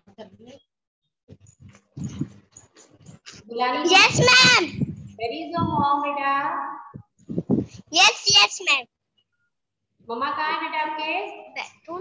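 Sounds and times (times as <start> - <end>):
broken voices over video call: 2.0 - 12.0.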